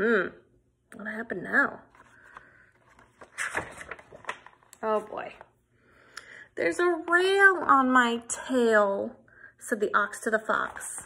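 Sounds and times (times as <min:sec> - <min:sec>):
book page turning: 0:01.9 - 0:05.5.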